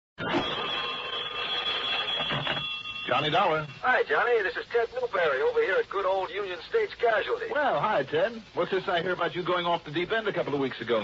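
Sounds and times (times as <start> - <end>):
telephone bell ringing: 0.2 - 4.0.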